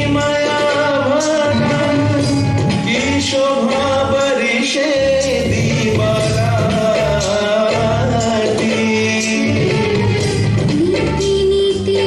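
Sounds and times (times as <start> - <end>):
instrumental backing: 0.0 - 12.0
person singing: 0.0 - 12.0.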